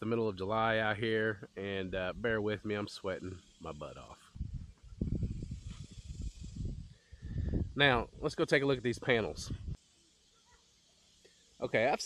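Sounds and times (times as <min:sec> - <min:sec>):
faint steady high hiss: 0:00.0 - 0:12.0
wind buffeting microphone: 0:04.2 - 0:09.8.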